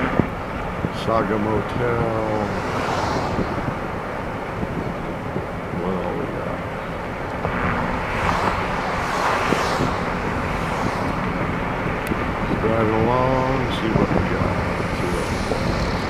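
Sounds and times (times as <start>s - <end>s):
car road and engine noise: 0.0s - 16.0s.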